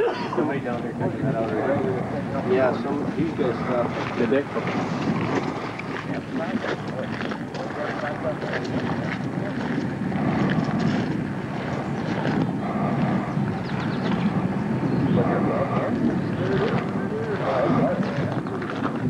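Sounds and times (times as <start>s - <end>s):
low rumble: 0.0s - 19.0s
people talking indistinctly: 0.0s - 19.0s.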